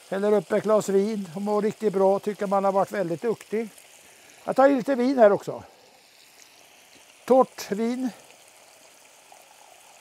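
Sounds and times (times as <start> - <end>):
wine trickling into a saucepan: 0.0 - 10.0.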